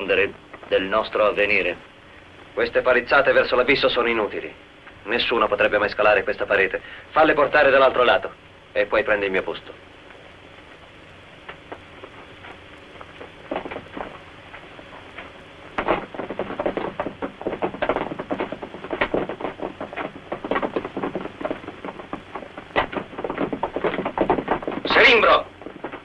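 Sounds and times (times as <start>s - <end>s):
clatter of knocks and thuds: 11.4s - 26.0s.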